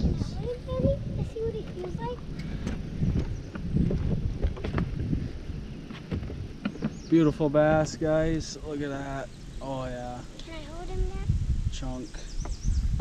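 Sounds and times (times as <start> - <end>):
wind rumble: 0.0 - 13.0
handling noise: 1.5 - 8.0.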